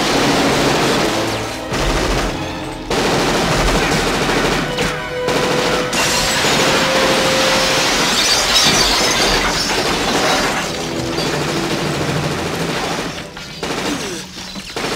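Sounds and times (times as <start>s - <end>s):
automatic gunfire: 0.0s - 7.4s, 11.7s - 14.9s
glass shattering: 0.0s - 14.9s.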